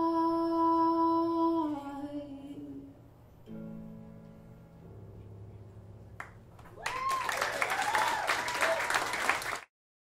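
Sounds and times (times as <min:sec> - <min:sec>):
woman singing long note: 0:00.0 - 0:02.9.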